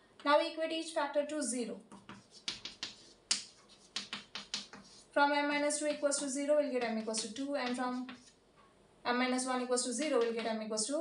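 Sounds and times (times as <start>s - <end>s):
chalk tapping on blackboard: 1.9s - 5.1s, 6.8s - 8.4s, 10.1s - 10.5s
chalk scraping on blackboard: 2.0s - 5.1s, 7.0s - 8.4s.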